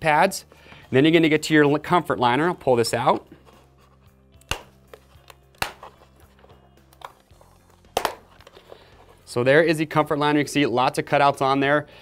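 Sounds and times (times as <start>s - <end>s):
faint background music: 0.0s - 12.0s
helmet liner popping free: 4.4s - 8.6s.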